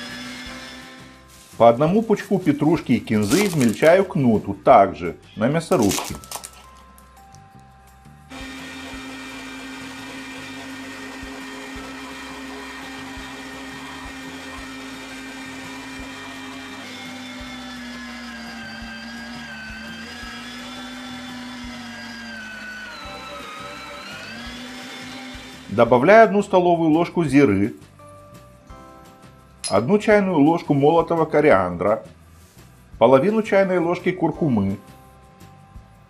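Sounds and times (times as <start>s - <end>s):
electric meat grinder motor humming: 0.0s - 1.2s, 8.3s - 26.3s.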